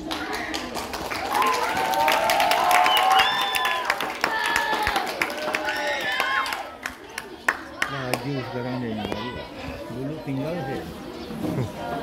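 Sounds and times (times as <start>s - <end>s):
children talking and calling out: 0.0s - 1.9s, 4.0s - 12.0s.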